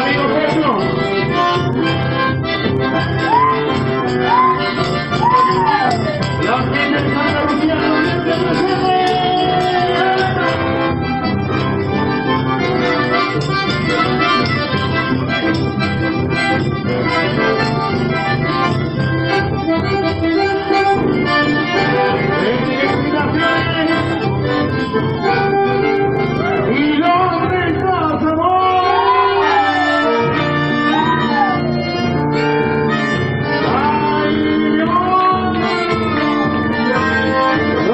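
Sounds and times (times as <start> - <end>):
bandoneon: 0.0 - 27.8, 28.7 - 37.9
accordion melody: 0.0 - 37.9
electric bass: 0.0 - 37.9.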